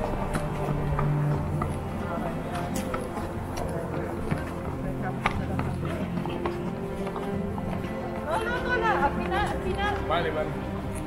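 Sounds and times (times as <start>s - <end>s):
background music with low notes: 0.0s - 11.0s
horse hooves on pavement: 0.0s - 11.0s.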